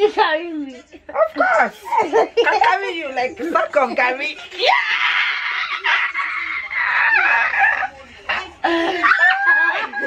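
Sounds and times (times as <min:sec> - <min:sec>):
shrill laughter and squealing: 0:04.6 - 0:10.0.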